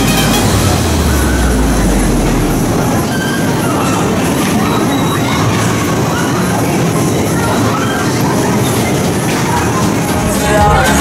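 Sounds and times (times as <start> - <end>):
low hum: 0.0 - 3.4
music playing: 0.0 - 3.5, 9.0 - 11.0
bumper cars rumbling: 0.0 - 11.0.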